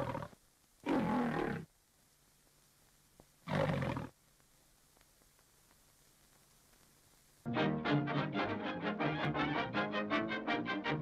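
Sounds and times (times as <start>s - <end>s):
lion roar: 0.0s - 1.7s.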